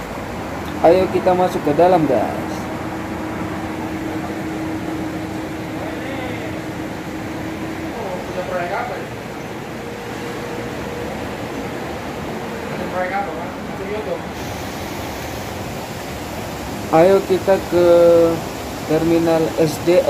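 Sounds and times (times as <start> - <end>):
continuous hum: 0.0 - 20.0
rushing background noise: 0.0 - 20.0.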